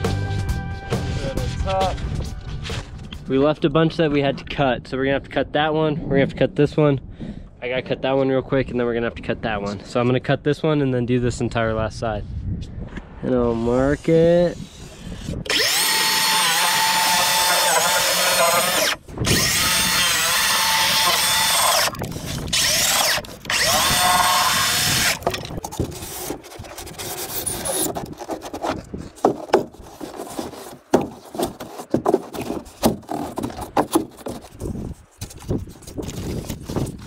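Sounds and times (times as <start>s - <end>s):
circular saw whining: 13.9s - 28.0s.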